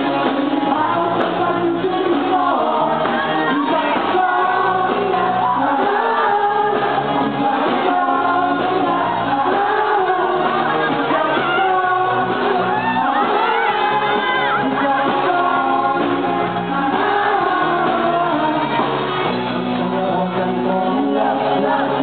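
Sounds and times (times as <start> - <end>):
drums and percussion: 0.0 - 22.0
woman and man singing: 0.0 - 22.0.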